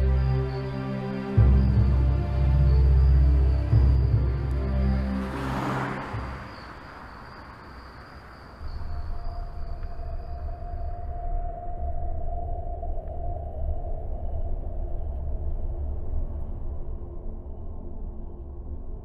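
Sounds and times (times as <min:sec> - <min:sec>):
car driving past: 0:01.4 - 0:09.1.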